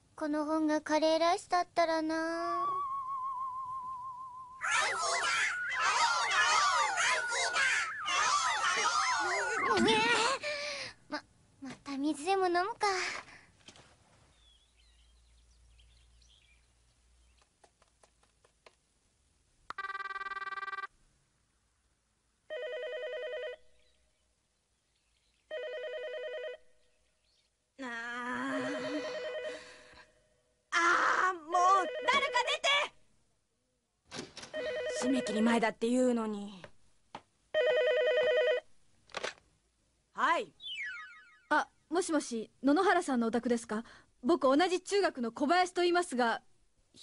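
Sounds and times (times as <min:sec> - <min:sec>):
telephone ringing warbling trill: 0:04.6 - 0:10.0, 0:19.7 - 0:20.9, 0:40.6 - 0:41.5
electronic beep: 0:04.8 - 0:08.6, 0:40.6 - 0:41.5
telephone ringing: 0:19.7 - 0:20.9, 0:22.5 - 0:23.7, 0:25.5 - 0:26.7, 0:28.6 - 0:29.9, 0:31.8 - 0:32.6, 0:34.5 - 0:35.5, 0:37.6 - 0:38.7.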